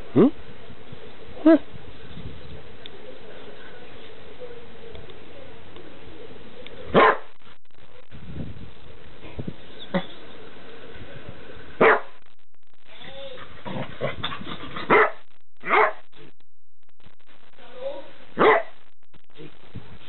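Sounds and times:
dog play barks: 6.9s - 7.3s, 11.8s - 12.1s, 13.4s - 16.0s, 18.4s - 18.7s.

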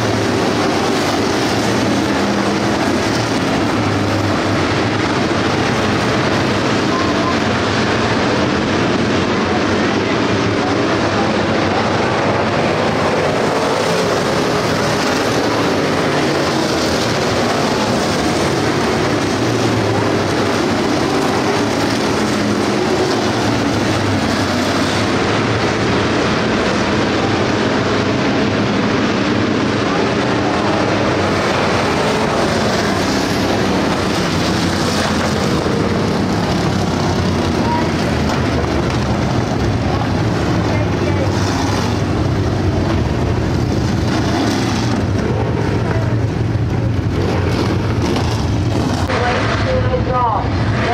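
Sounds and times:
race car engines roaring: 0.0s - 50.9s.

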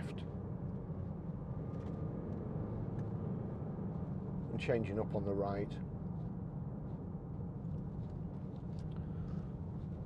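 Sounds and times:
car cabin road and engine drone: 0.0s - 10.0s.

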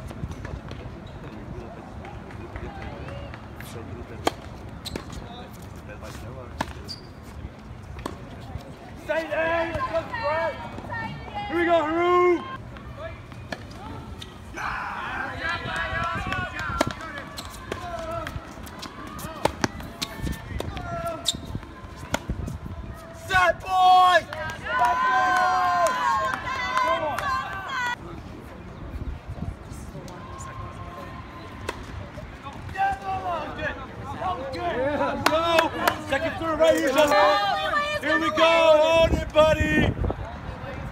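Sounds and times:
people's voices: 0.0s - 40.9s.

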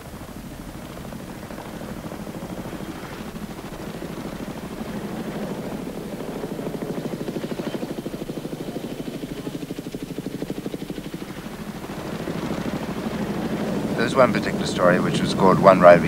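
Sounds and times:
helicopter rotor chopping: 0.0s - 16.0s.

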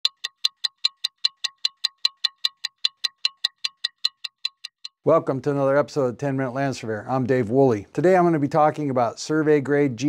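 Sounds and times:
rapid metallic ticks: 0.0s - 5.1s.

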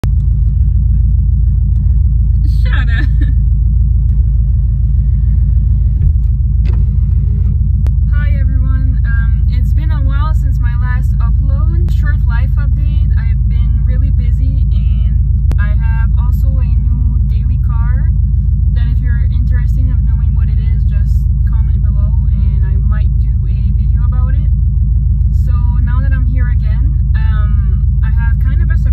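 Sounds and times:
car engine idling inside cabin: 0.0s - 28.9s.

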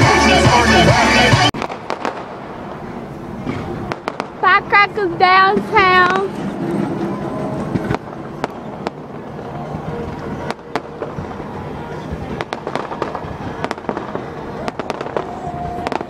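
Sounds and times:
fireworks cracks and pops: 1.6s - 2.8s, 3.4s - 4.5s, 12.3s - 16.0s.

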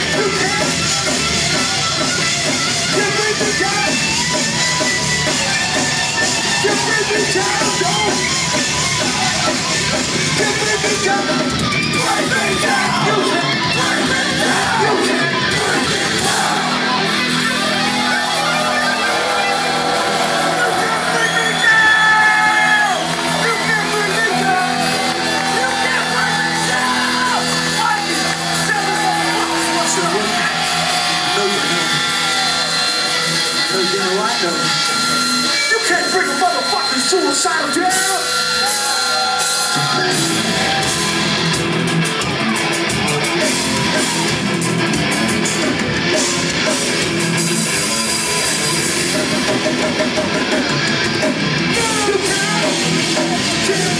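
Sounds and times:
crowd shouting and singing along: 0.0s - 53.9s
electric guitar and bass notes: 0.0s - 53.9s.

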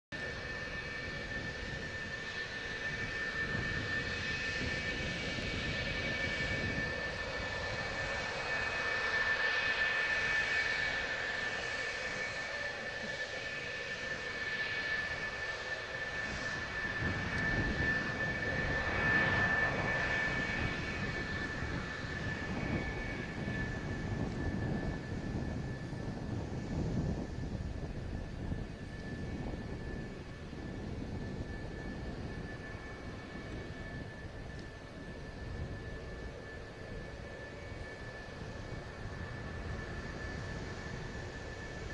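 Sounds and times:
jet engines whining: 0.2s - 41.9s.

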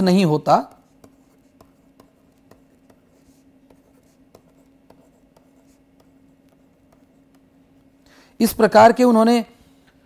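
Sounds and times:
steady low hum: 0.0s - 10.0s
stylus tapping and scratching: 0.8s - 8.0s.

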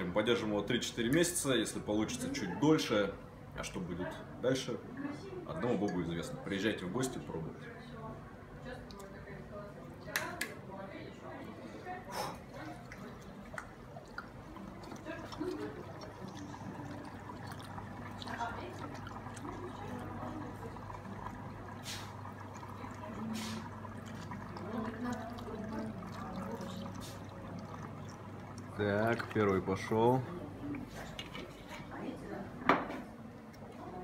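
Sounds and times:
liquid pouring through a funnel: 11.4s - 32.2s.

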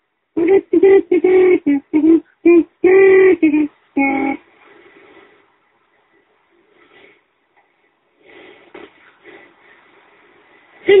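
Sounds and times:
person singing wordless notes: 0.4s - 4.4s.

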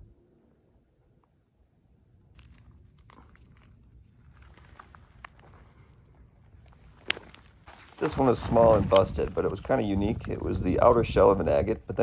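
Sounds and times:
footsteps crunching on gravel: 2.4s - 10.6s.

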